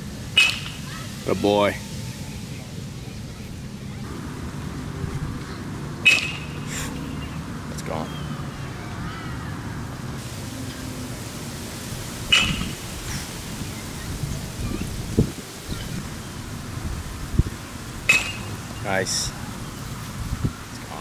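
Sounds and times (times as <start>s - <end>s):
baseball bat cracking ball: 0.4s - 0.9s, 6.0s - 7.3s, 18.0s - 18.8s
wind rumble on microphone: 11.2s - 21.0s.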